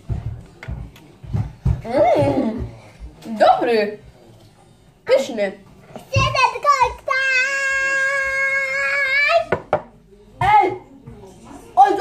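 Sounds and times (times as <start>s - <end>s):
child's voice: 6.0s - 9.5s.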